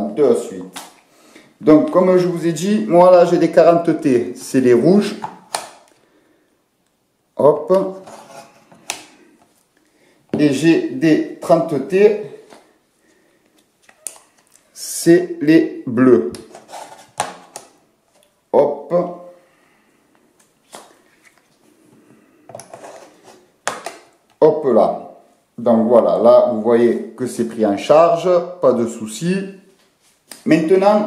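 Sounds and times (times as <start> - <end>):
scraping and handling: 7.9 - 9.7, 16.4 - 18.3, 22.5 - 24.0.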